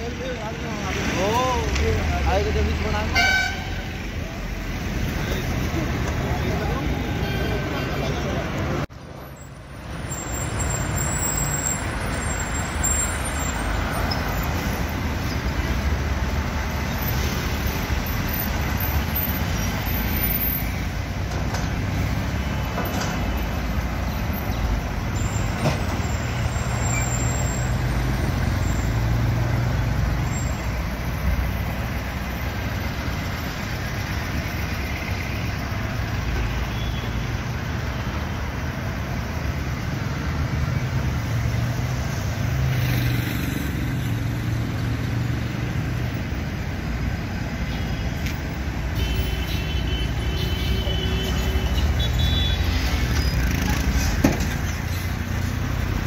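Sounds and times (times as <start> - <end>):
heavy trucks passing: 0.0 - 56.0.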